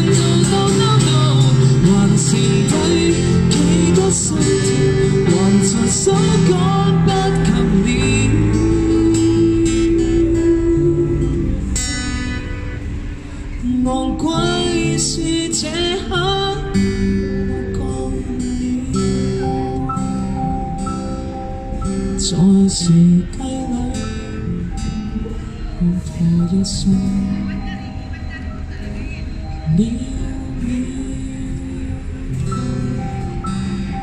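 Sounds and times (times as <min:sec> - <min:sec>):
acoustic guitar: 0:00.0 - 0:34.0
electronic keyboard: 0:00.0 - 0:34.0
lead melody line: 0:00.0 - 0:34.0.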